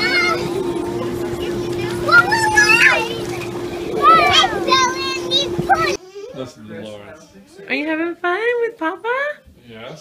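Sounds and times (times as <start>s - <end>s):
steady hum: 0.0s - 6.0s
children shouting and squealing: 0.0s - 6.4s.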